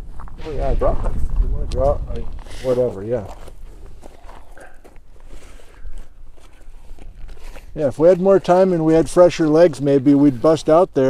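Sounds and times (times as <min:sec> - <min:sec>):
scuffs on gravel: 0:00.0 - 0:09.4
backpack rustling: 0:02.4 - 0:07.8.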